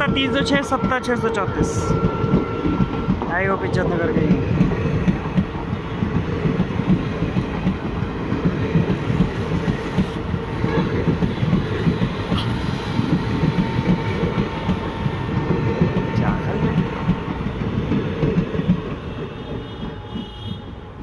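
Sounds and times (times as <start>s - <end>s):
train wheels clattering over rails: 2.0s - 21.0s.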